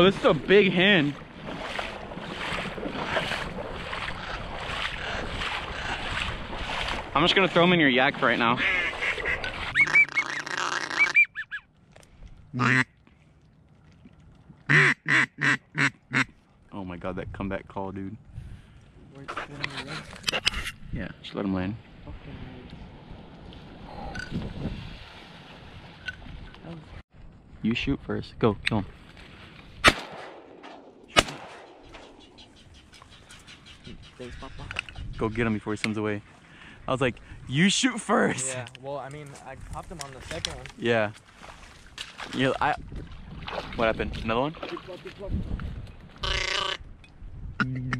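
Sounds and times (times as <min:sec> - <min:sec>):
duck call quacks: 0:08.6 - 0:11.6, 0:12.6 - 0:12.9, 0:14.7 - 0:16.3, 0:46.2 - 0:46.8
shotgun shots with echo: 0:29.8 - 0:32.2.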